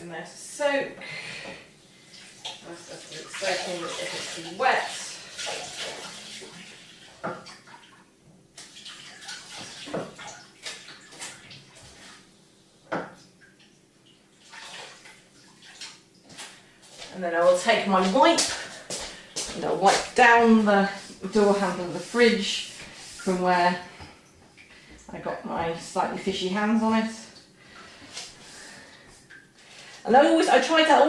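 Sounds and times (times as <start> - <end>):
kitchen tap running: 2.0 - 7.9
water splashing in a sink: 2.0 - 16.7.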